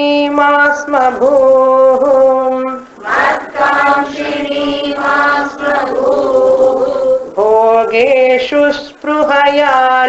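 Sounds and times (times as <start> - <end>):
woman chanting in long notes: 3.2 - 7.6.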